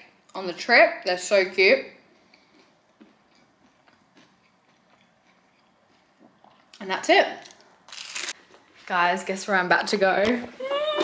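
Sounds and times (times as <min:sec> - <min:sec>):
faint chewing of toast: 0:02.1 - 0:06.8.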